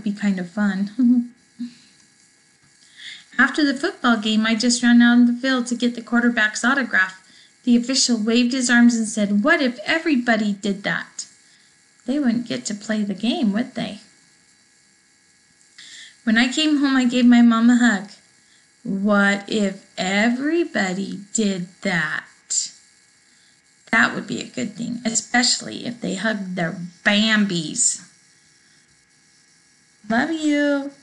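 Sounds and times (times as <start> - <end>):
faint electrical hum: 0.0 - 31.0
short soft hiss: 1.4 - 3.2.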